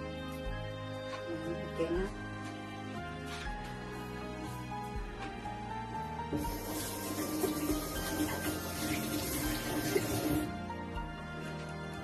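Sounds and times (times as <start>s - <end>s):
background music: 0.0s - 12.0s
tap running into sink: 6.3s - 10.5s.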